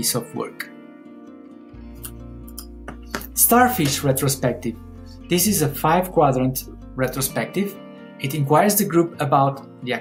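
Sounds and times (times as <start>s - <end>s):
plucked-string background music: 0.0s - 10.0s.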